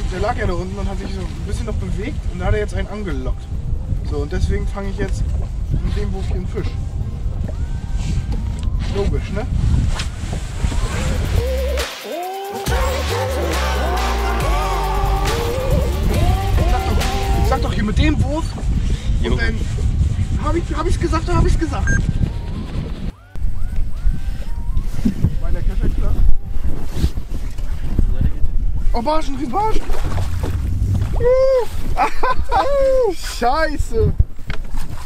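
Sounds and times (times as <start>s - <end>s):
wind buffeting microphone: 0.0s - 11.8s, 14.4s - 35.0s
background voices: 10.6s - 20.7s
music with melody over bass: 11.0s - 17.8s.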